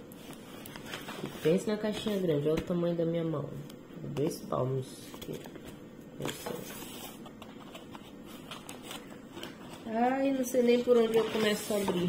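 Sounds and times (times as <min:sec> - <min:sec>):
plastic film crinkling: 0:06.2 - 0:12.0.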